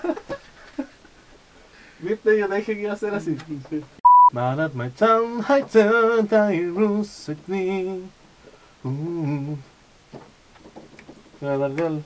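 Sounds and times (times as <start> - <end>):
man singing: 2.0 - 8.2, 8.8 - 9.7, 11.4 - 12.0.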